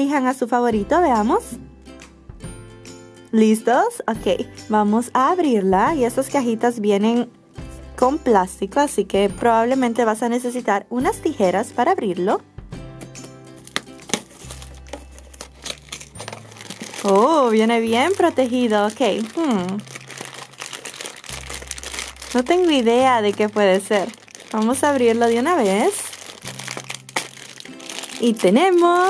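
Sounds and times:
plastic wrap crinkling and tearing: 13.2 - 29.0.

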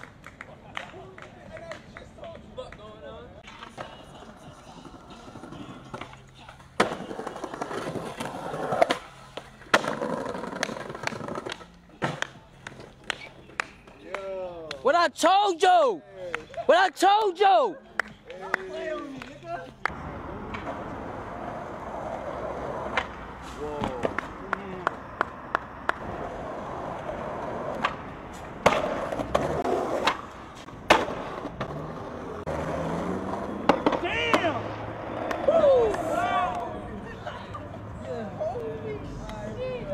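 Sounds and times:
skateboard wheels rolling on stone: 3.4 - 13.9, 19.9 - 36.2
skateboard clacks: 3.4 - 14.8, 22.5 - 23.2, 23.8 - 26.3, 26.9 - 31.9, 33.3 - 36.7.

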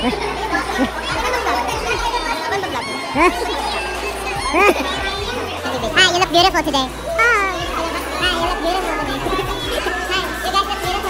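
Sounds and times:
loud high cry: 0.0 - 6.2
music playing: 0.0 - 11.0
young people chattering: 0.0 - 11.0.

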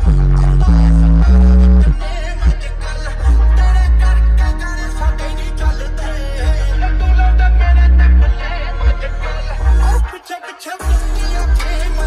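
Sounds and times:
loud bass music through subwoofer: 0.0 - 12.0.

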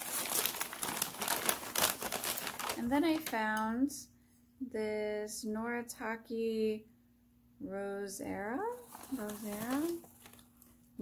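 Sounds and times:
wrapping crinkling: 0.0 - 3.6, 8.6 - 10.9.

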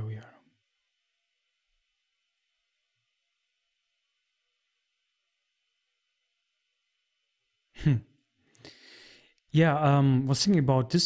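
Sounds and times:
man saying hmm: 7.8 - 8.1
soft breathy exhale: 8.5 - 9.4.

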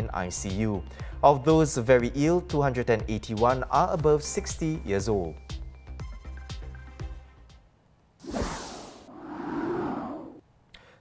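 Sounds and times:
background music: 0.0 - 7.8.

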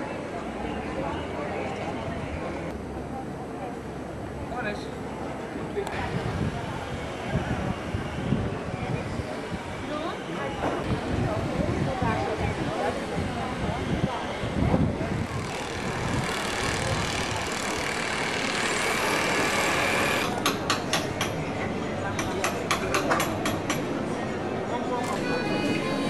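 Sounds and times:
steady background noise: 0.0 - 26.0
indistinct voices: 5.7 - 26.0.

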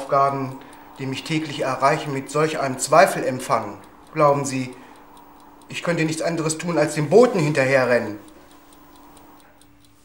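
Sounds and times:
low hum: 0.0 - 9.9
clock ticking: 0.0 - 10.0.

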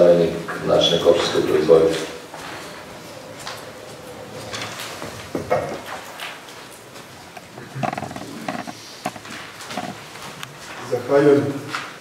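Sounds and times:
hall room noise: 0.0 - 12.0.

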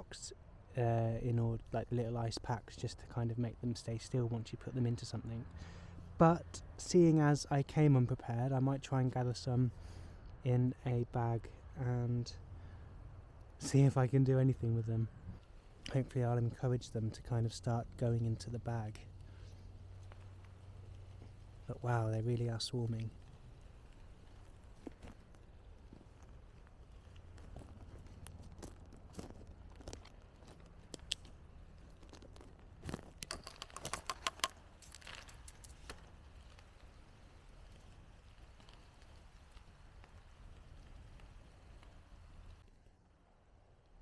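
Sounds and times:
faint low rumble: 0.0 - 33.7, 34.5 - 44.0.

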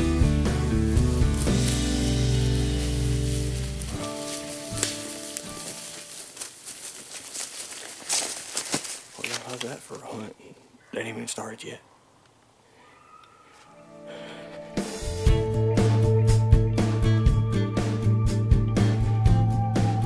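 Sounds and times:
background music: 0.0 - 6.2, 13.7 - 20.0
dry leaves crackling: 0.0 - 10.2
clothing rustling on microphone: 1.2 - 10.2.

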